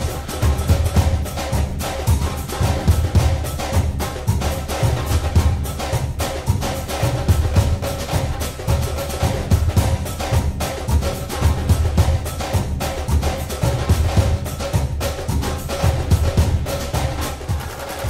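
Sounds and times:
background music with beat: 0:00.0 - 0:18.0.

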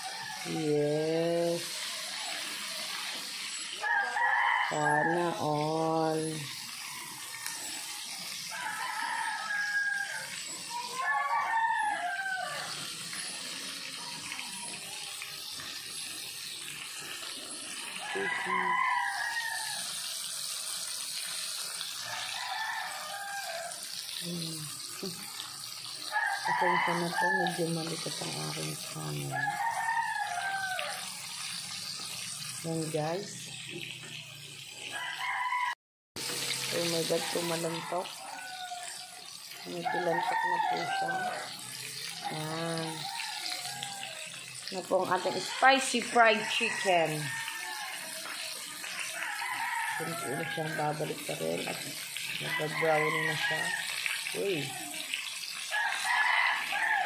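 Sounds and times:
rooster crowing: 0:00.0 - 0:00.6, 0:03.7 - 0:13.4, 0:17.8 - 0:20.3, 0:21.8 - 0:24.0, 0:25.9 - 0:28.0, 0:28.6 - 0:31.3, 0:34.9 - 0:44.5, 0:45.1 - 0:55.0, 0:55.6 - 0:57.0
chicken sizzling in hot oil: 0:00.0 - 0:57.0.

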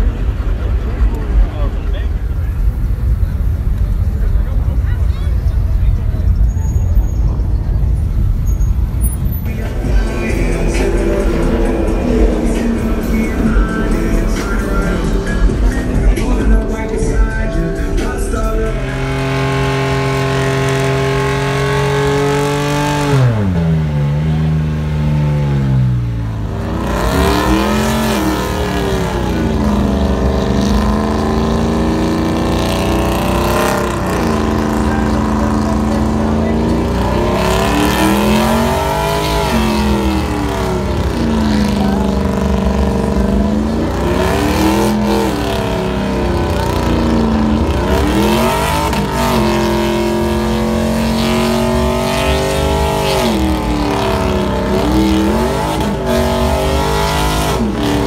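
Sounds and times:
truck engine revving hard: 0:00.0 - 0:58.0.

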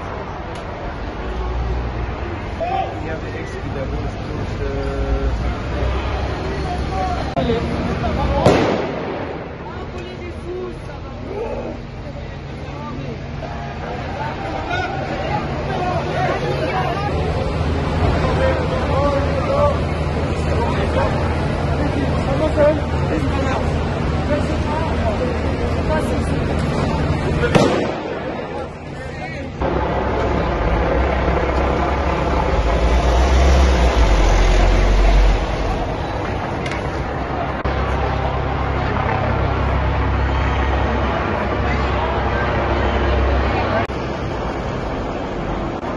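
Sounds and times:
people's voices: 0:00.0 - 0:45.9
loud explosive bang: 0:08.4 - 0:09.9, 0:27.5 - 0:28.6.

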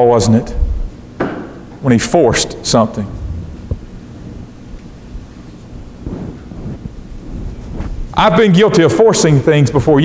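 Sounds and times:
low steady rumbling: 0:02.3 - 0:08.3
clothing rustling on microphone: 0:03.2 - 0:08.2.

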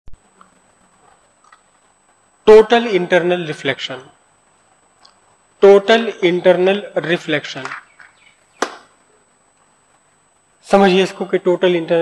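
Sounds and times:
sharp click: 0:07.6 - 0:08.9.

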